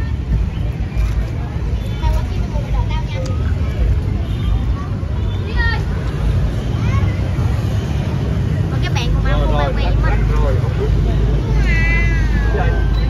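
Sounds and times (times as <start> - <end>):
crowd chatter: 0.0 - 13.0
traffic rumble: 0.0 - 13.0.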